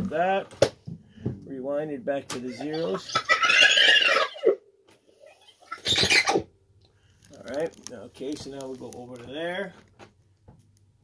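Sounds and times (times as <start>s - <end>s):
tape rewinding squeal: 2.6s - 4.6s, 5.3s - 6.4s.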